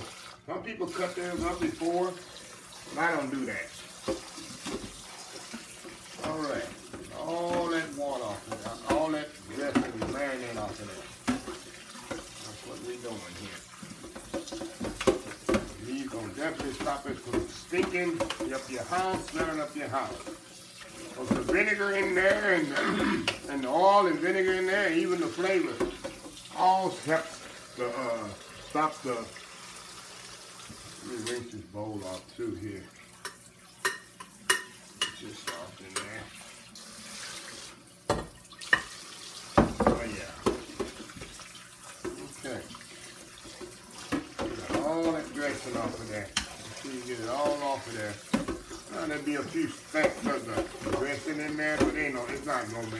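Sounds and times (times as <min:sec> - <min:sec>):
tap water running into sink: 0:00.0 - 0:52.9
person speaking: 0:00.5 - 0:02.3, 0:02.9 - 0:03.9, 0:06.2 - 0:11.2, 0:12.4 - 0:13.7, 0:15.5 - 0:20.3, 0:21.1 - 0:29.4, 0:31.0 - 0:33.0, 0:39.8 - 0:40.6, 0:44.5 - 0:48.3, 0:48.9 - 0:52.9
glass bowl knocking against sink: 0:39.6 - 0:41.0.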